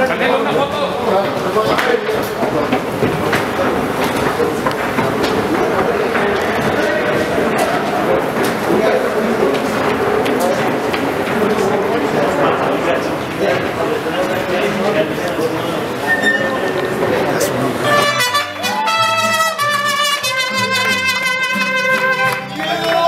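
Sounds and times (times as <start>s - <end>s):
hubbub of overlapping voices: 0.0s - 23.0s.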